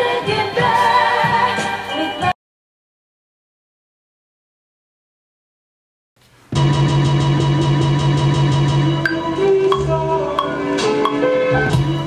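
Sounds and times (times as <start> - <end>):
hip-hop beat: 8.9 - 12.0.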